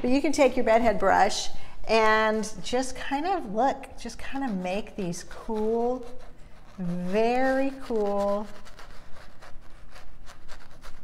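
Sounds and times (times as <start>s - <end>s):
brush scratching on canvas: 3.2s - 11.0s.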